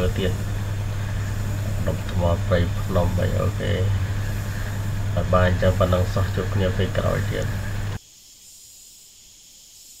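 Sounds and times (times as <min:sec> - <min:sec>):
high-pitched forest hiss: 0:00.0 - 0:10.0.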